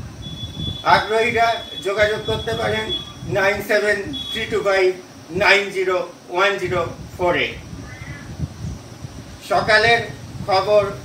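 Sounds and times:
bird calling: 7.8s - 8.4s.

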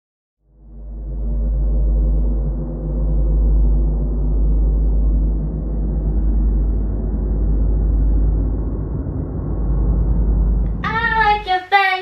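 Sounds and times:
deep bass backing: 0.6s - 11.6s
high-pitched voice singing: 10.8s - 12.0s.

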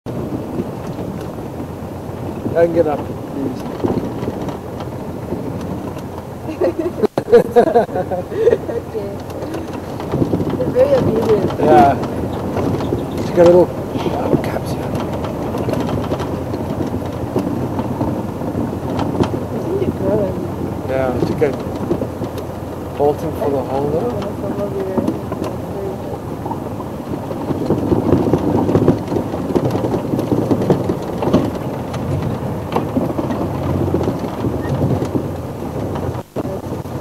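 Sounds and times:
engine idling: 0.1s - 37.0s
wind buffeting microphone: 0.1s - 37.0s.

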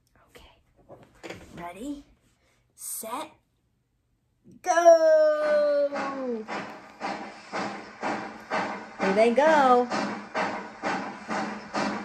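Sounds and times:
steam train chuffs: 5.4s - 12.0s.

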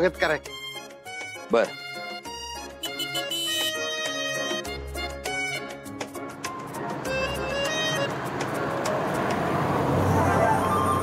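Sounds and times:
street traffic: 0.6s - 11.0s
motorcycles passing by: 6.4s - 11.0s.

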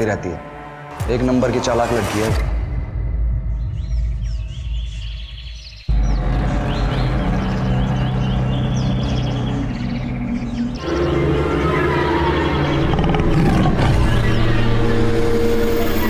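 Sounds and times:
low rumbling music bed: 2.8s - 16.0s
bird chirps: 3.4s - 16.0s
low drone: 5.9s - 16.0s.

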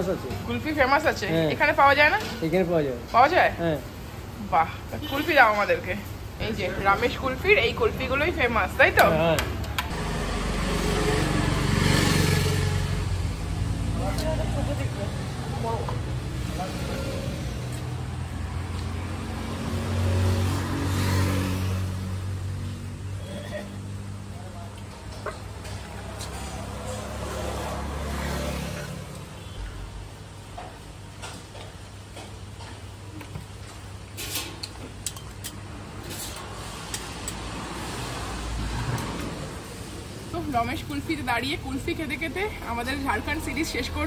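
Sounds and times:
vehicle engine drone passing: 9.9s - 24.3s, 25.9s - 29.2s.

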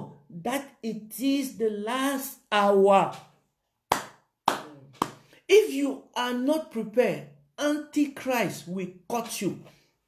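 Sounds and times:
sharp hand claps: 3.9s - 5.3s.

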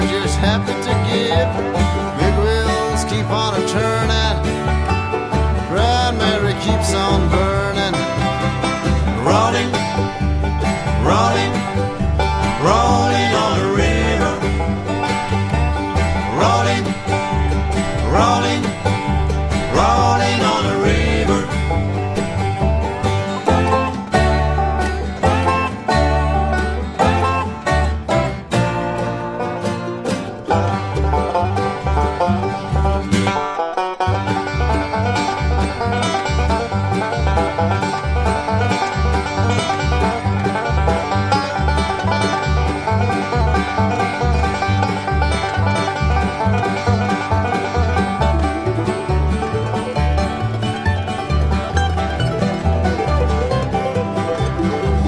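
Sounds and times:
banjo picking: 0.0s - 55.0s
bluegrass band playing: 0.0s - 55.0s
upright bass: 0.0s - 55.0s.

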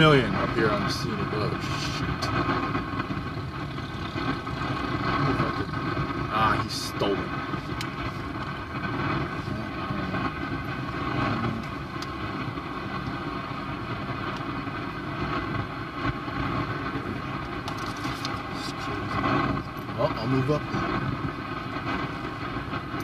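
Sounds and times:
car engine and road noise: 0.0s - 23.0s.

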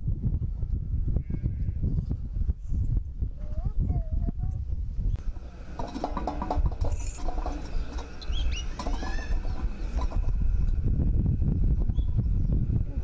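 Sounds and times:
steady low rumble: 0.0s - 13.0s
birds chirping: 5.1s - 10.8s.

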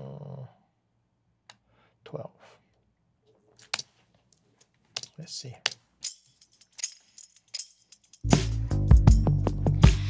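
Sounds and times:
song with bass and drums: 8.2s - 10.0s.

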